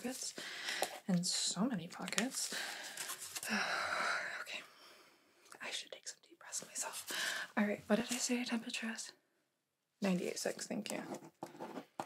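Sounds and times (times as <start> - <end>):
woman whispering: 3.4 - 4.7, 5.5 - 9.2.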